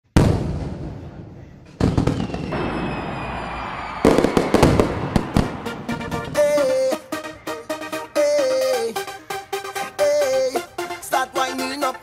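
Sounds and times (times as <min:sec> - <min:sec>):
firework bang: 0:00.1 - 0:06.4
falling firework whistle: 0:01.8 - 0:05.9.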